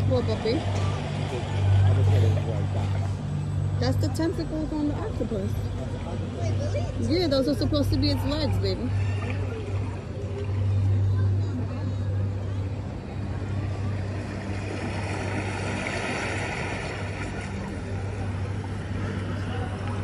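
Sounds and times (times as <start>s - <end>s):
faint background chatter: 0.0s - 20.0s
low hum: 0.0s - 20.0s.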